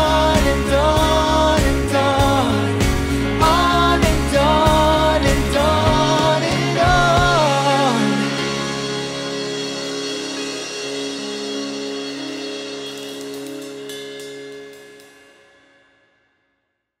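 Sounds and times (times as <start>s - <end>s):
drum and cymbal hits: 0.0s - 7.7s, 8.4s - 15.5s
band closing chord: 0.0s - 15.8s.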